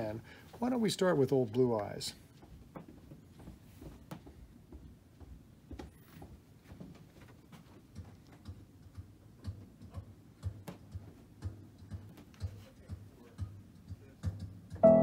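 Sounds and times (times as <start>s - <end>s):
piano music: 14.8s - 15.0s.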